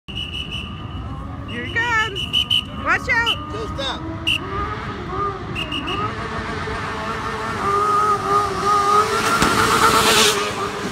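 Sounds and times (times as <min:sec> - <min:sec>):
race car engine: 0:02.3 - 0:10.9
rush of passing car: 0:04.3 - 0:10.9.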